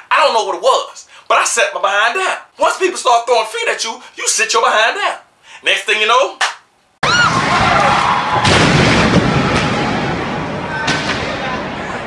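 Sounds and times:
ceiling debris crashing down: 0:07.0 - 0:12.0.

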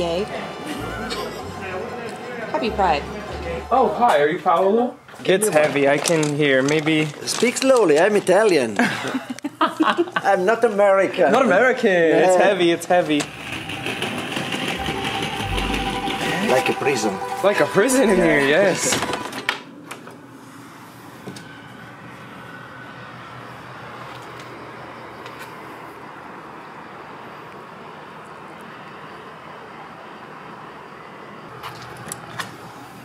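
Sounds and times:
distant vehicles: 0:00.0 - 0:09.4, 0:10.2 - 0:33.0
suitcase wheels rattling on tiles: 0:05.5 - 0:08.5
deeper rumble: 0:13.1 - 0:19.4.

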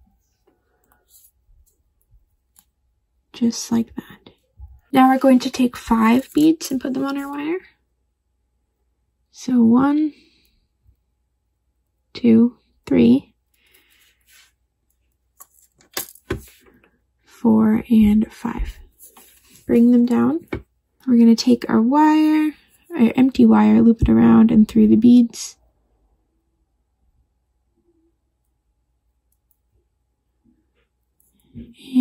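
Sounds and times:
soft rustle: 0:13.6 - 0:15.8, 0:18.7 - 0:19.8.

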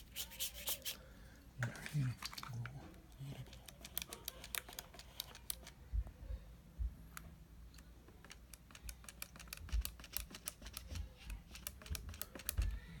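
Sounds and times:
small hard clicks and taps: 0:07.1 - 0:12.8.

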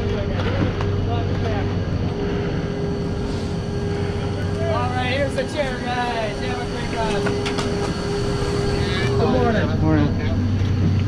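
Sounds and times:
chairlift drive humming: 0:00.0 - 0:11.0.

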